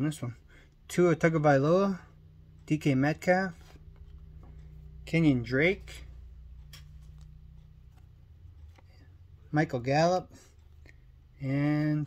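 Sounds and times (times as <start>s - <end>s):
low steady hum: 0.0s - 12.0s
handling trading cards: 2.4s - 11.5s
soft card clicks: 6.4s - 9.0s.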